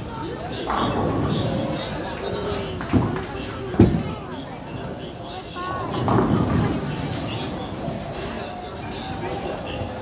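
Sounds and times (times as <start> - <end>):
bowling balls rolling: 0.5 - 4.2, 5.9 - 10.0.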